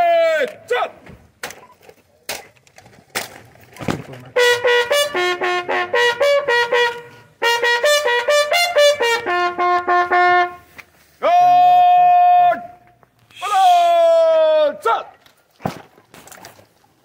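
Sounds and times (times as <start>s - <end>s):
bugle call: 4.3s - 14.1s.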